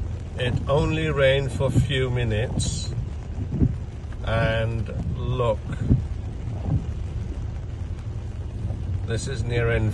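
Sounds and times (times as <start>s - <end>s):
traffic rumbling through floodwater: 0.0s - 9.9s
wind on microphone: 0.0s - 9.9s.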